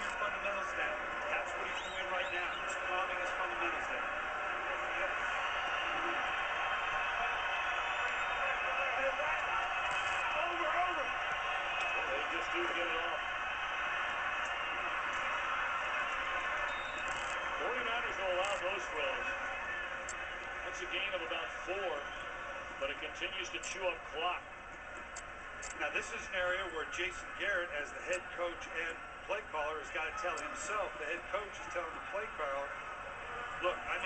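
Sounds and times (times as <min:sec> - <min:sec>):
stadium crowd din: 0:00.0 - 0:34.0.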